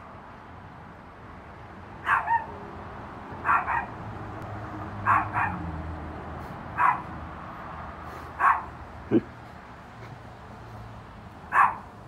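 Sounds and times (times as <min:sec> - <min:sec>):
small dog yipping: 0:02.0 - 0:02.7, 0:03.4 - 0:03.9, 0:05.1 - 0:05.6, 0:06.8 - 0:07.0, 0:11.5 - 0:11.8.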